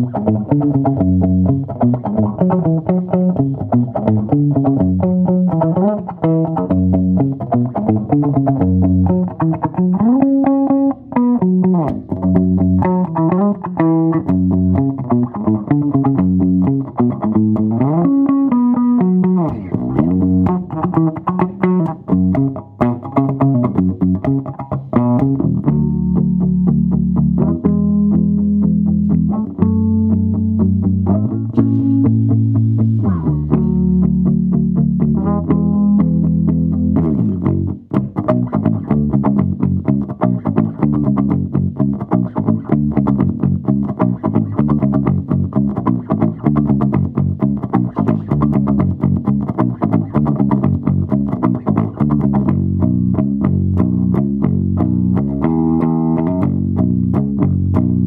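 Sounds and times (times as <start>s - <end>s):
electric bass played with a pick: 0.0s - 58.0s.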